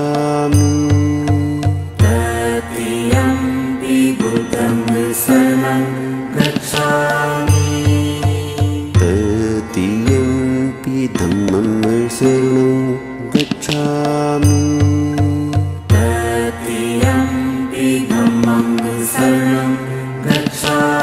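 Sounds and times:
chanted vocal melody: 0.0 - 21.0
steady drone: 1.0 - 21.0.

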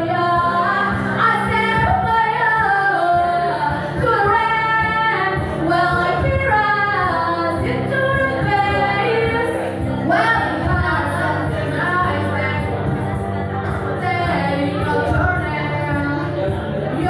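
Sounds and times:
woman singing into a microphone: 0.0 - 17.0.

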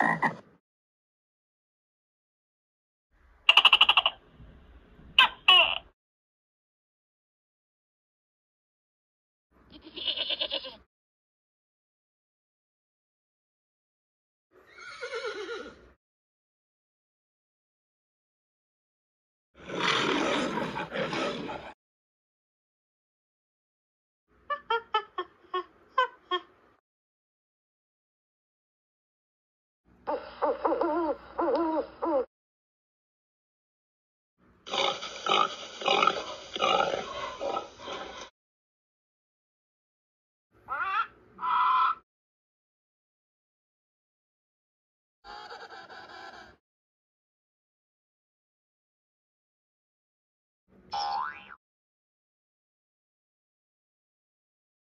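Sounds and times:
pig grunting: 0.0 - 0.4, 19.6 - 21.8, 34.7 - 38.3
goat bleating: 9.7 - 10.8.

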